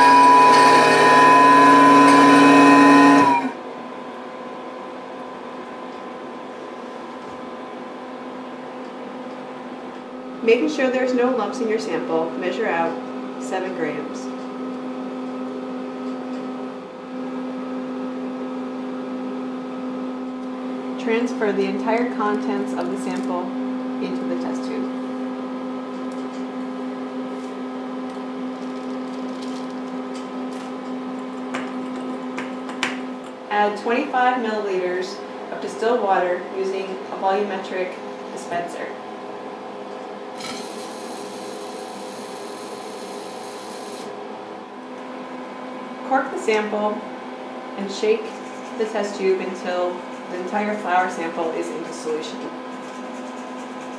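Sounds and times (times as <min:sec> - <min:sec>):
electrical hum: 0:00.0 - 0:53.9.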